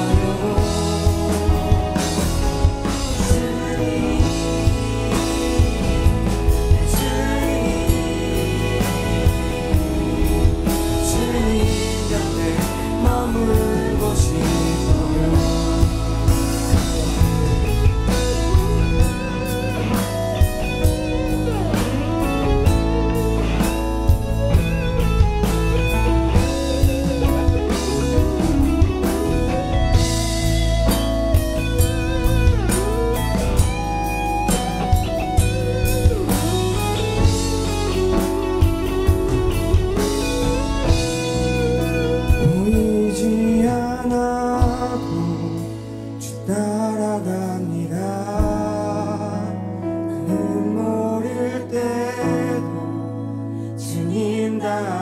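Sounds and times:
voices singing together: 0:00.0 - 0:17.4
steady beat: 0:00.0 - 0:43.2
acoustic guitar: 0:00.0 - 0:55.0.

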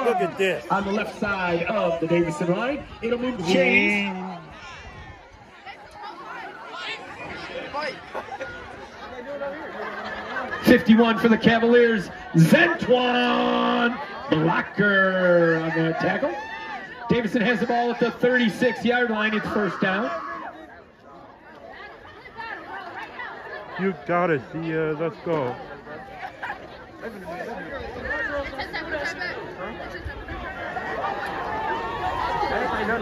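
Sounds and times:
crowd chatter: 0:00.0 - 0:33.0.

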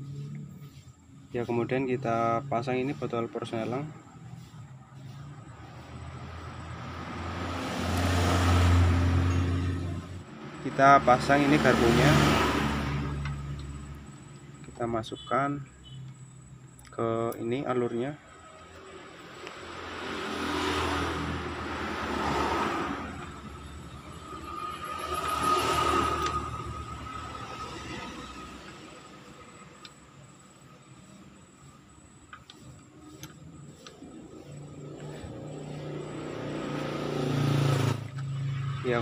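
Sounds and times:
motor vehicles passing: 0:00.0 - 0:39.0
metal engine parts clicking: 0:31.9 - 0:35.2.

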